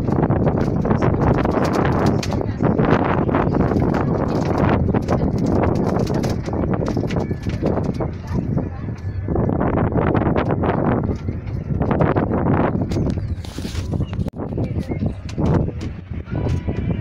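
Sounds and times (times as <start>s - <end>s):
train wheels clattering over rails: 0.0s - 9.1s
steady low rumble: 0.0s - 17.0s.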